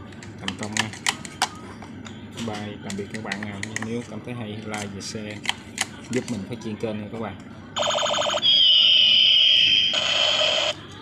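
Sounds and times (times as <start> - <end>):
toy gun electronic firing sound: 7.8 - 10.8.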